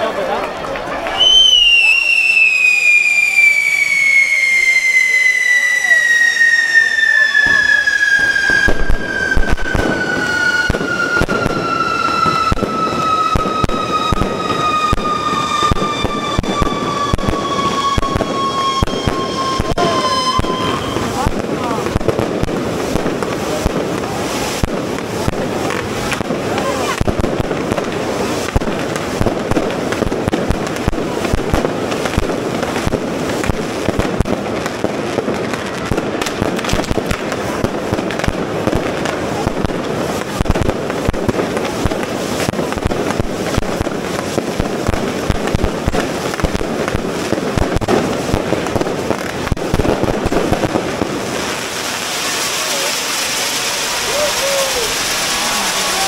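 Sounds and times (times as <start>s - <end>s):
spark fountains rushing: 1.0s - 56.0s
firecracker bangs: 1.2s - 56.0s.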